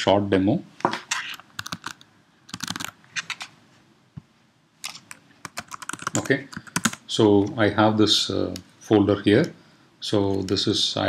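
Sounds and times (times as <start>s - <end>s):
computer keyboard keys clicking: 1.6s - 3.5s, 4.8s - 7.0s.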